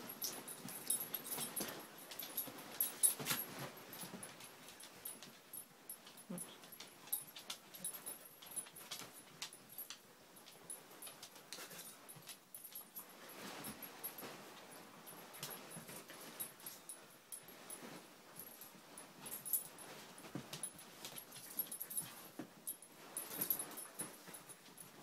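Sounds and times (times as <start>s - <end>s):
puppies scuffling: 0.0s - 25.0s
small dog noises: 6.1s - 9.2s.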